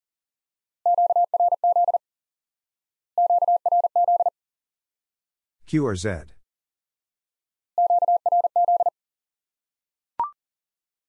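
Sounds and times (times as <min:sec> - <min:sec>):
morse code tone: 0:00.9 - 0:02.0, 0:03.2 - 0:04.3, 0:07.8 - 0:08.9.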